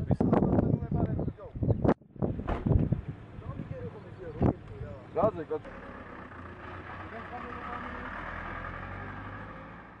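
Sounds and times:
vehicle engine humming: 2.3 - 10.0.

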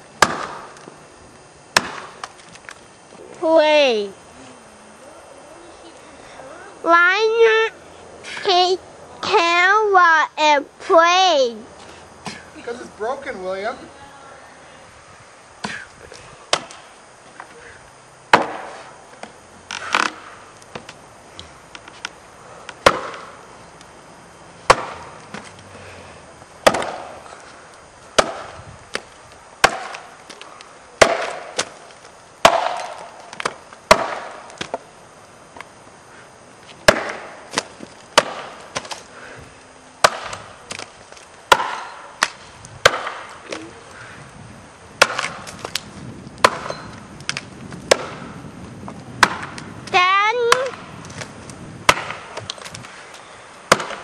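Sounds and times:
axe chopping into wood: 0.2 - 0.8, 1.7 - 2.3, 16.5 - 16.8, 18.3 - 18.9, 22.8 - 23.3, 24.7 - 25.5, 26.6 - 27.2, 28.1 - 30.4, 31.0 - 31.8, 32.4 - 34.8, 36.8 - 39.0, 40.0 - 40.9, 41.5 - 43.6, 45.0 - 45.8, 46.4 - 48.3, 49.2 - 49.6, 50.5 - 51.3, 51.9 - 52.7, 53.7 - 54.0.

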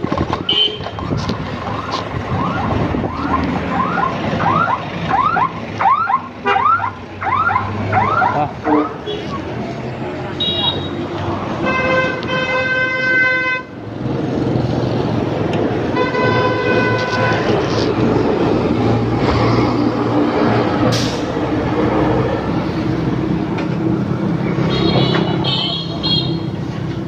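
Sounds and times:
road traffic noise: 0.0 - 27.0
motorbike horn honking: 0.5 - 0.9, 24.7 - 26.5.

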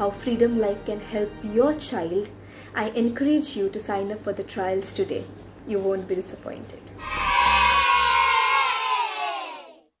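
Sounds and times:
children cheering: 7.0 - 9.9.

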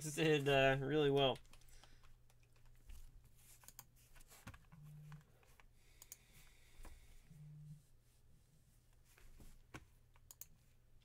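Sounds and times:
computer keys clicking: 1.2 - 2.8, 3.6 - 3.9, 6.0 - 6.2, 10.2 - 10.6.

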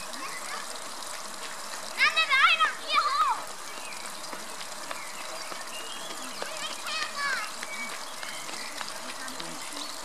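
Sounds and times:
water splashing over rocks: 0.0 - 10.0.

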